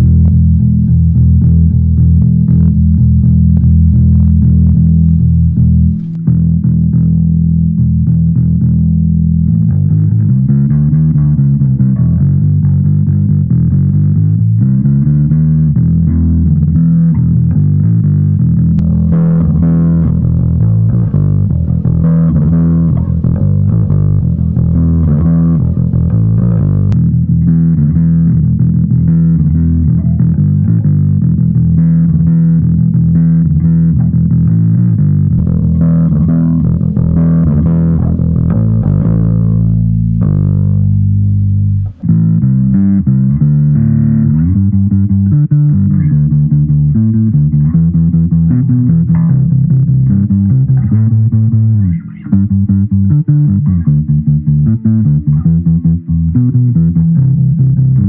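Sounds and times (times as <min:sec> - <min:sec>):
overdriven electric bass: 0:00.0 - 0:58.0.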